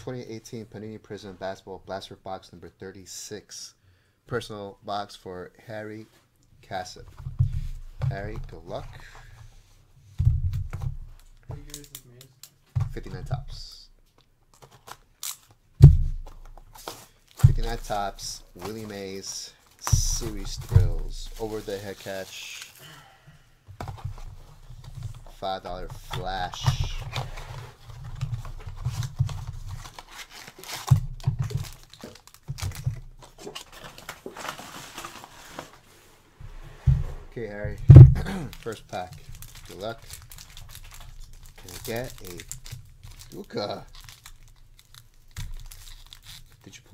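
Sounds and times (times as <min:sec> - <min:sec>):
person talking: 0:11.5 - 0:13.9, 0:17.4 - 0:22.7, 0:25.3 - 0:27.3
plastic wrap crinkling: 0:14.5 - 0:22.9, 0:24.0 - 0:36.1, 0:38.3 - 0:46.9
thumps: 0:15.8 - 0:16.5, 0:36.4 - 0:38.3.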